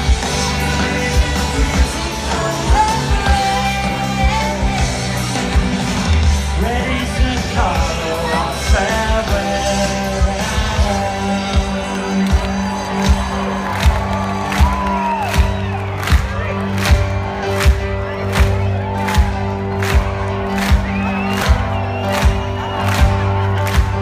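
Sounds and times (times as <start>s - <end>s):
live band music: 0.0s - 24.0s
crowd cheering and whooping: 11.7s - 24.0s.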